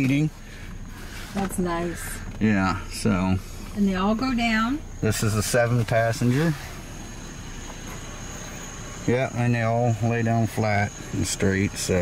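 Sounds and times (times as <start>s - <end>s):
faint high whine: 0.0s - 12.0s
low background hum: 0.0s - 12.0s.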